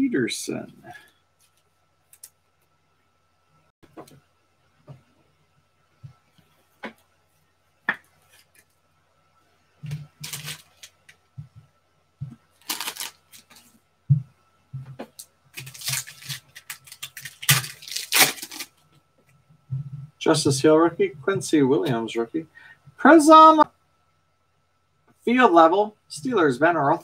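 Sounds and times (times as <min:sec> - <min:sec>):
foil packs tearing and crinkling: 0:10.2 - 0:10.9, 0:12.6 - 0:13.6, 0:15.6 - 0:18.8.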